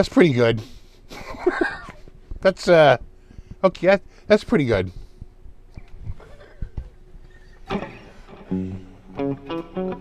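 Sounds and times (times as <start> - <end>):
electric guitar picked notes: 7.6 - 10.0.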